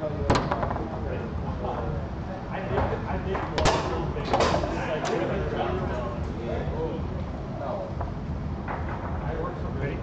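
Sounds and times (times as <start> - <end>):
crowd chatter: 0.0 - 8.4.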